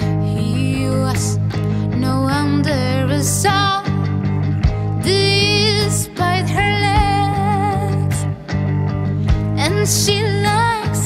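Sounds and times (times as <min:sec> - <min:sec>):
woman singing: 0:00.0 - 0:08.4, 0:09.5 - 0:11.0
bass and electric guitar: 0:00.0 - 0:11.0.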